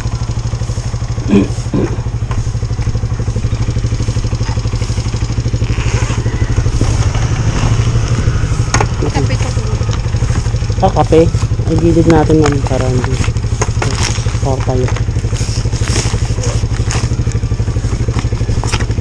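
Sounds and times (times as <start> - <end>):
motorcycle engine idling: 0.0 - 19.0.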